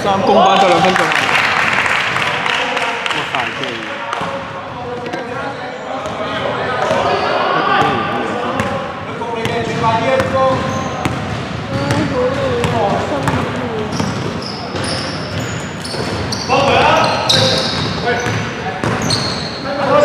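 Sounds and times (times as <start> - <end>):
voices talking and calling out: 2.4 - 20.0
basketball bouncing on wooden floor: 9.5 - 16.4.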